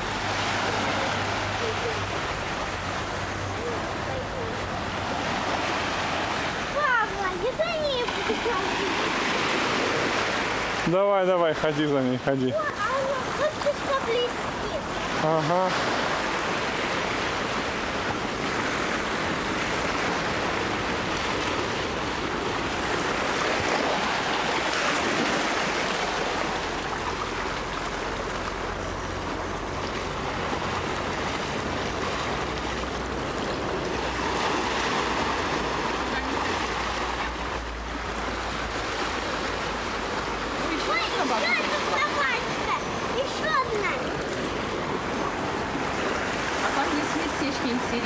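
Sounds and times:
surf washing onto sandy beach: 0:00.0 - 0:48.0.

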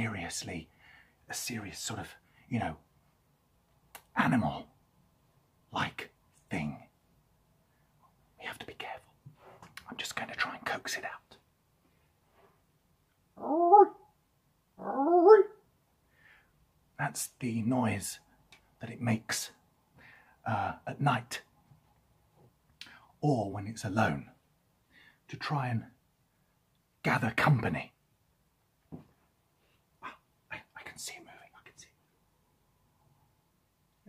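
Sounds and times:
man whispering: 0:00.0 - 0:02.8, 0:04.0 - 0:04.7, 0:05.7 - 0:06.9, 0:08.4 - 0:11.4, 0:17.0 - 0:21.5, 0:22.8 - 0:24.4, 0:25.2 - 0:26.0, 0:27.0 - 0:28.0, 0:30.0 - 0:32.1
man imitating animal call: 0:13.4 - 0:14.0, 0:14.8 - 0:15.6.

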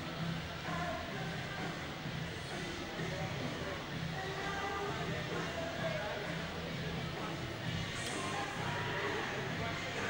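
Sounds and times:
background music: 0:00.0 - 0:10.0
crowd chatter: 0:00.0 - 0:10.0.

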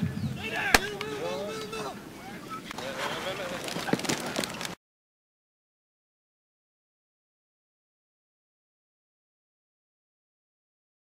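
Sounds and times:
noisy field ambience: 0:00.0 - 0:04.8.

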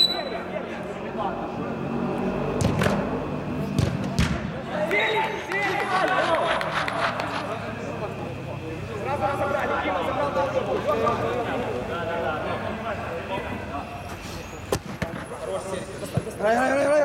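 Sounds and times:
football kicks echoing: 0:03.7 - 0:04.6
players shouting: 0:04.6 - 0:08.4.

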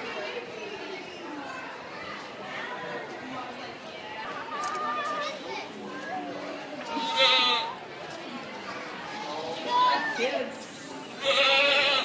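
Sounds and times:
people chattering: 0:00.0 - 0:12.0
goat bleating: 0:06.9 - 0:07.7, 0:11.2 - 0:12.0.

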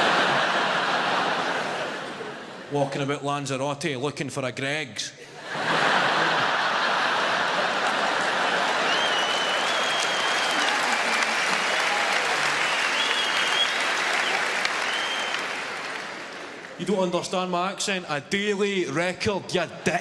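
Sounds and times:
audience applauding: 0:06.0 - 0:17.0
high whistles: 0:08.8 - 0:10.7, 0:12.4 - 0:15.6.

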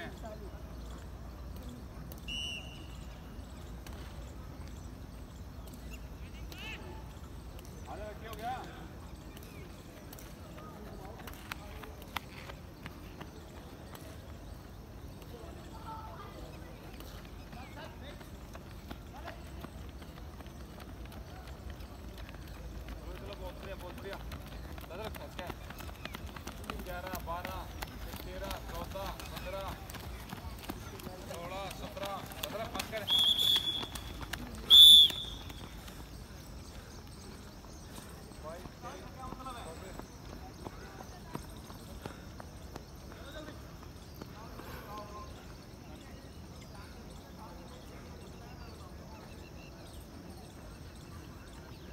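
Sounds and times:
faint distant voices: 0:00.0 - 0:51.9
running footsteps on rubber track: 0:00.0 - 0:51.9
high-pitched whistle blast: 0:34.7 - 0:35.4.

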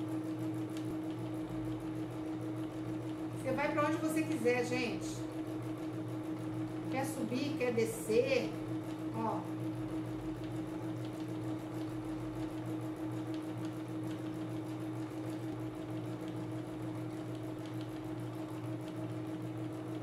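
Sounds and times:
electric sewing machine humming: 0:00.0 - 0:20.0.

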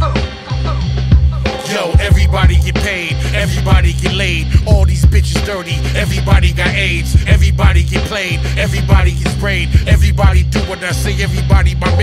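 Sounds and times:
hip hop vocal: 0:00.0 - 0:12.0
drum beat: 0:01.1 - 0:12.0
heavy bass line: 0:01.2 - 0:12.0.

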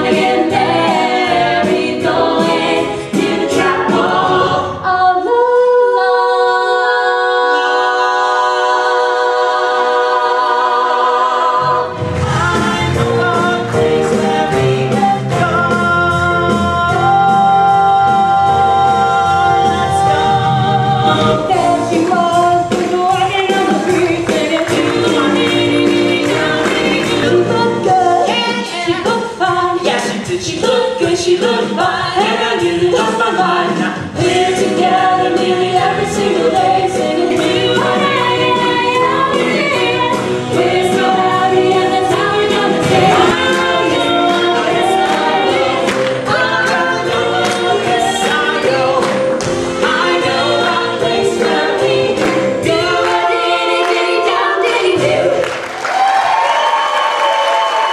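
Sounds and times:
voices singing in harmony: 0:00.0 - 0:55.7
backing band with steady beat: 0:11.8 - 0:54.2.

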